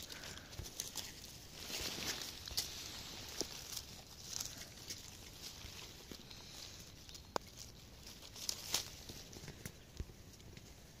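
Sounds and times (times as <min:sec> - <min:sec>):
dry leaves and twigs crackling: 0:00.0 - 0:11.0.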